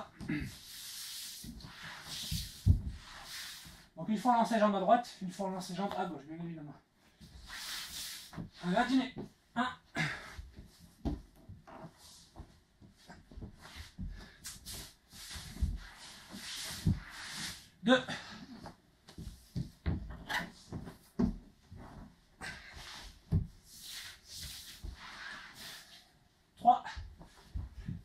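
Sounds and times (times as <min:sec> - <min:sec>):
cloth swishing and rustling: 0:00.6 - 0:04.0, 0:10.5 - 0:17.8, 0:19.0 - 0:26.1
body thudding on wooden floor: 0:19.1 - 0:22.2.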